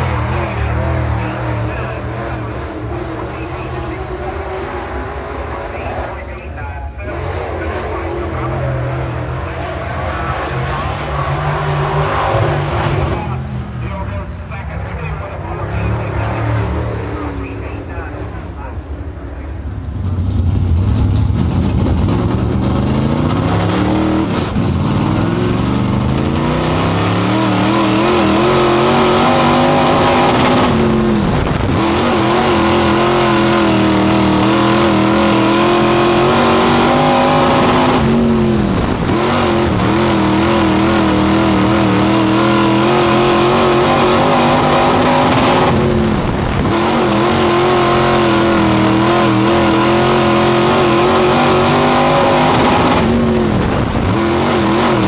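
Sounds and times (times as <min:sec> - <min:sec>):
race car engine at full throttle: 0:00.0 - 0:55.0.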